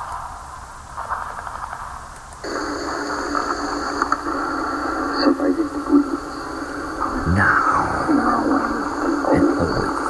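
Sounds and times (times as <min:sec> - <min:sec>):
crackling static hiss: 0:00.0 - 0:10.0.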